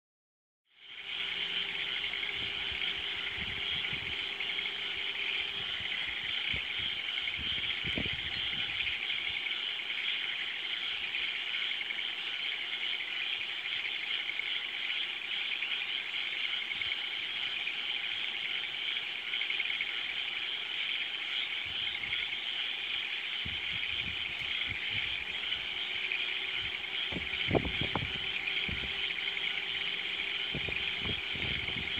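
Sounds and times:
frogs trilling: 0.7s - 31.9s.

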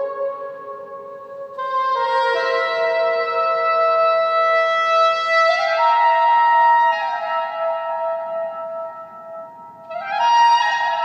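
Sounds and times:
soprano saxophone improvising: 0.0s - 7.0s.

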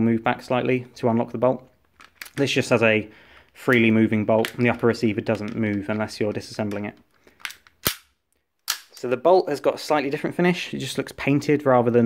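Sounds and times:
airsoft pistol action clicking: 7.4s - 8.1s.

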